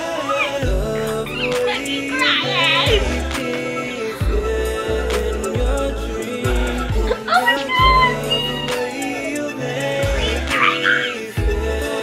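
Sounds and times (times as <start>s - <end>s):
high gliding melody: 0.0s - 12.0s
electronic beat with sliding bass: 0.6s - 12.0s.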